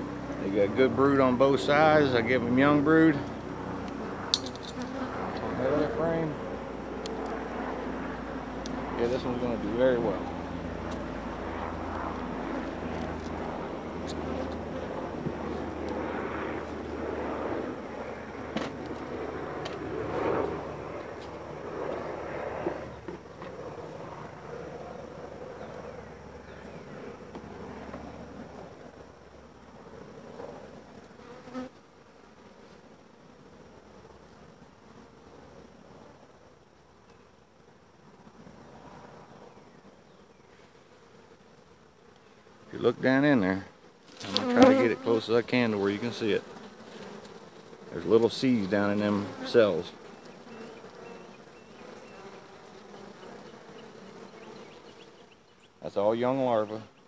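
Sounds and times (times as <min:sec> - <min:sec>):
honey bees buzzing: 0:00.0 - 0:57.0.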